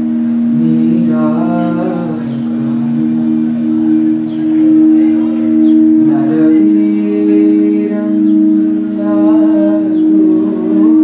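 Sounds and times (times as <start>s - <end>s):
sustained musical drone: 0.0s - 11.0s.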